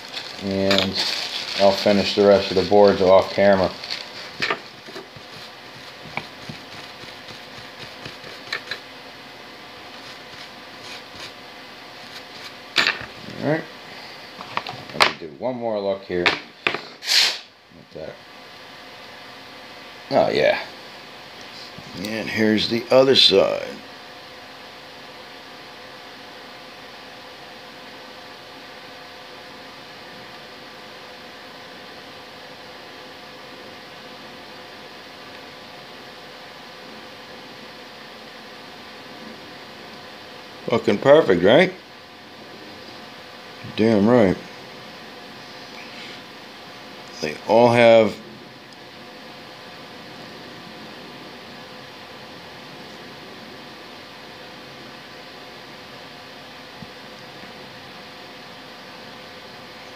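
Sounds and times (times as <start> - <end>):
cloth scrubbing circuit board: 0.0 - 8.8, 9.9 - 11.4
steady background hiss: 0.0 - 59.9
steady background hum: 0.0 - 59.9.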